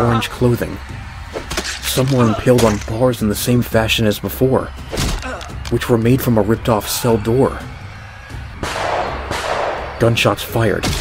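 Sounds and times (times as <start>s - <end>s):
dark background music: 0.0s - 11.0s
gunfire blasts with reverb: 8.6s - 11.0s.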